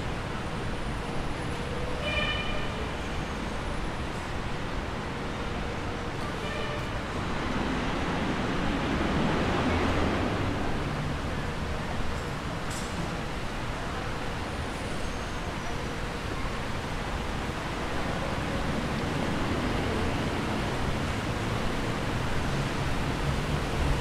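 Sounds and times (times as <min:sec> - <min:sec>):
traffic noise: 0:00.0 - 0:24.0.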